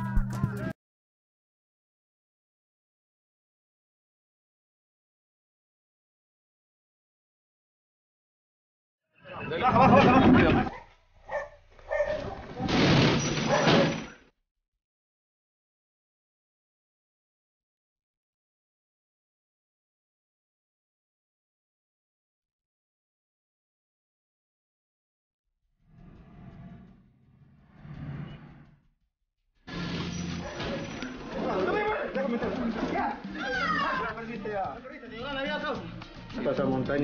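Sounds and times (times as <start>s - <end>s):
battering ram slamming metal gate: 12.6s - 14.2s
people shouting: 33.2s - 34.2s.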